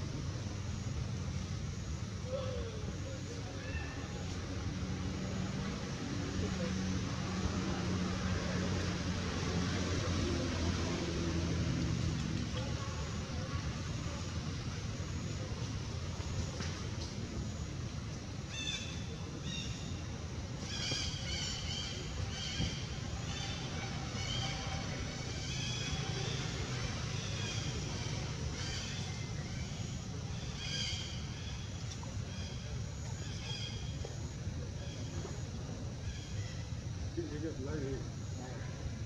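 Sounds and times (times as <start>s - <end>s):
low constant hum: 0.0s - 39.0s
steady hiss: 0.0s - 39.0s.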